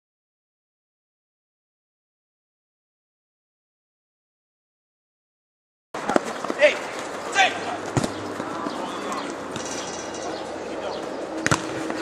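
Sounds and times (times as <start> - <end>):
players shouting: 6.0 - 11.9
ball being kicked: 7.9 - 8.8, 11.4 - 12.0.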